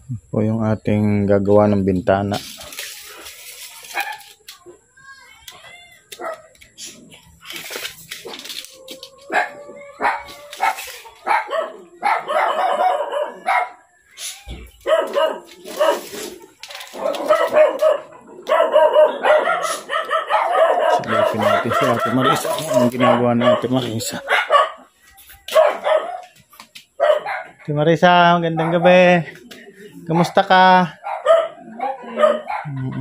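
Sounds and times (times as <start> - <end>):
dog barking: 6.2 - 6.5, 9.3 - 13.8, 14.8 - 16.3, 16.9 - 24.9, 25.5 - 26.4, 27.0 - 27.6, 28.5 - 28.9, 30.1 - 32.9.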